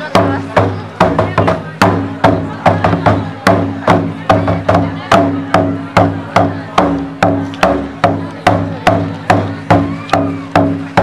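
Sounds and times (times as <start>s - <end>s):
drum beaten in steady beat: 0.0s - 11.0s.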